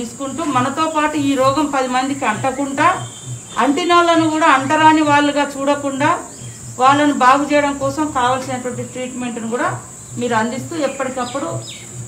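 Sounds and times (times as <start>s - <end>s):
woman speaking: 0.0s - 11.7s
insects droning: 0.0s - 12.0s.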